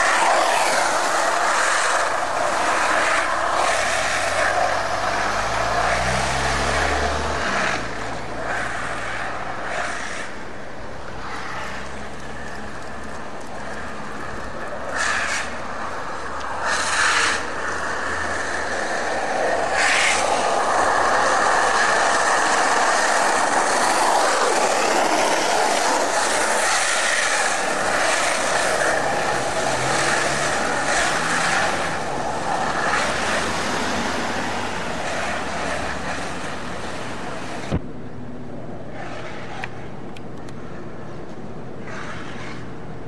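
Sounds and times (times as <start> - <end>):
skateboard wheels rolling on asphalt: 0.0 - 43.0.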